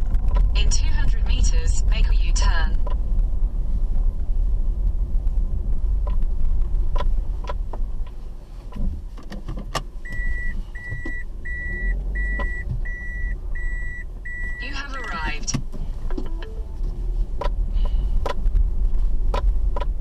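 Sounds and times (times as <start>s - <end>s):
car engine rumble: 0.0s - 20.0s
vehicle warning beeps: 10.0s - 15.6s.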